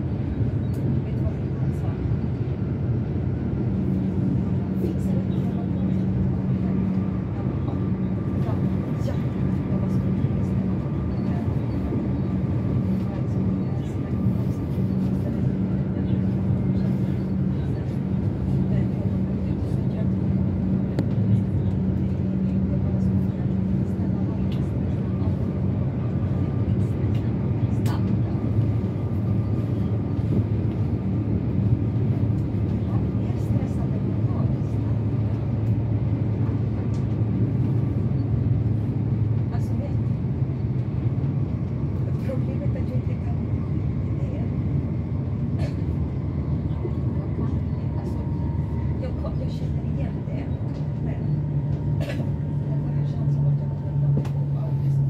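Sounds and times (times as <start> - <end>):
low traction motor hum: 0.0 - 55.0
train wheels rumbling on rails: 0.0 - 55.0.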